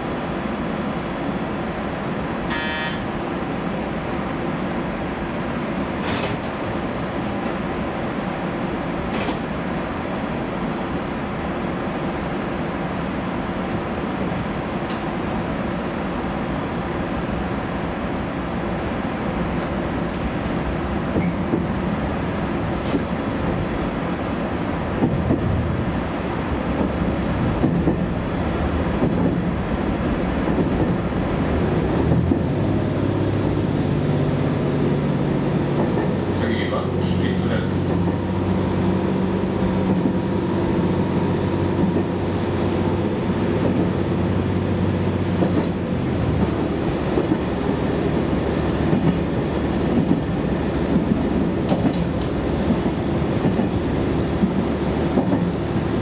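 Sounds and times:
railcar engine rumbling: 0:00.0 - 0:56.0
track knocks: 0:24.9 - 0:26.0, 0:26.7 - 0:28.2.

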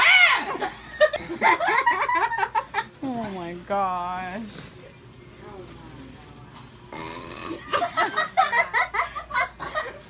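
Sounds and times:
person burping: 0:06.9 - 0:07.8.

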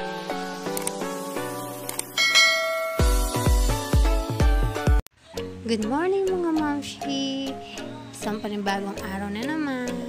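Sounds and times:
bright bell ding: 0:02.2 - 0:03.4.

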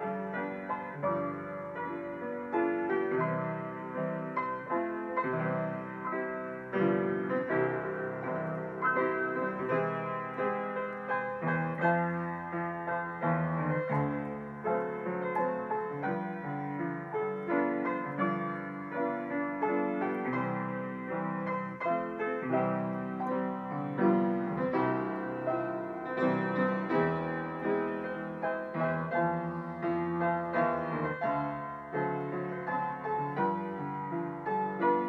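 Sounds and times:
solo grand piano: 0:00.0 - 0:35.0.

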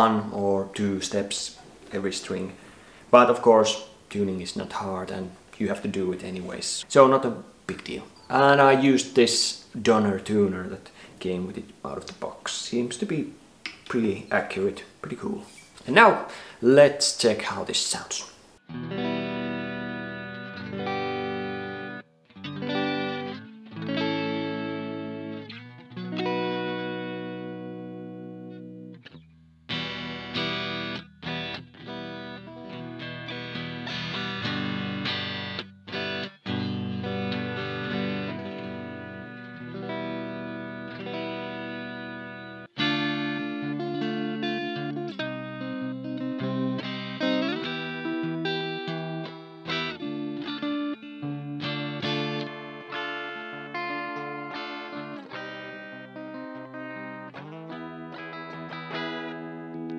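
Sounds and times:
electric guitar chords ringing: 0:18.6 - 0:59.9
picked electric guitar notes: 0:18.6 - 0:59.9.

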